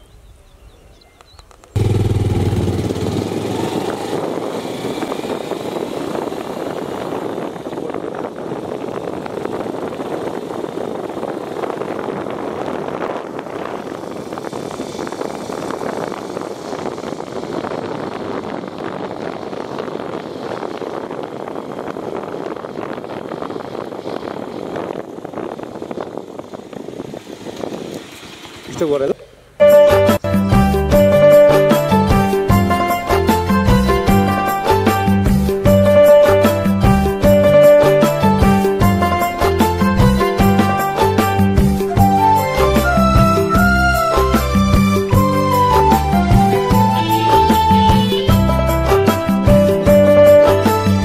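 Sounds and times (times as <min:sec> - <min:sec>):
motorcycle engine riding: 0:01.4 - 0:51.0.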